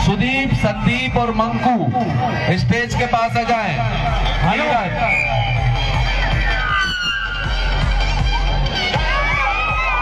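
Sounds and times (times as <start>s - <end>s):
crowd shouting and cheering: 0.0s - 10.0s
music with bass beat: 0.0s - 10.0s.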